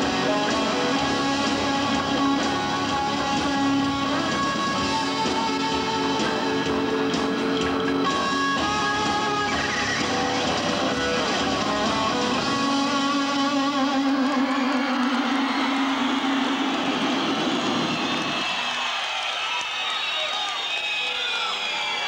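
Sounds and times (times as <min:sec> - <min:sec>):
live rock band with electric guitars: 0:00.0 - 0:18.8.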